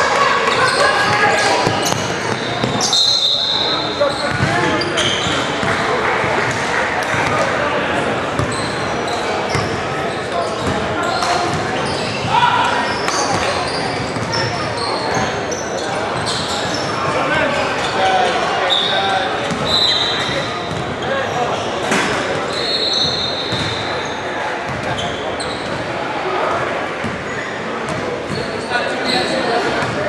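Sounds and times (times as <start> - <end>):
basketball bouncing on court: 1.6 - 2.9, 4.3 - 4.8, 19.5 - 20.9, 23.5 - 23.8.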